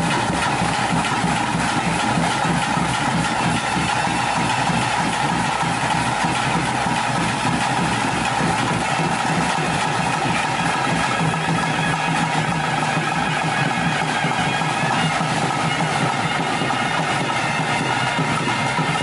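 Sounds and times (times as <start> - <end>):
fast percussion rhythm: 0.0 - 19.0.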